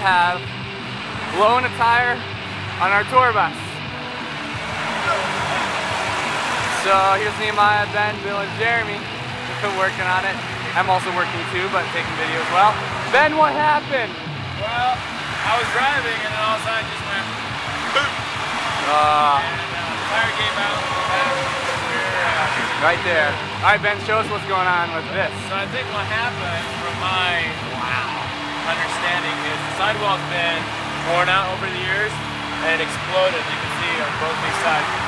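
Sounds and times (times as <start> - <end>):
traffic road noise rushing: 0.0 - 35.0.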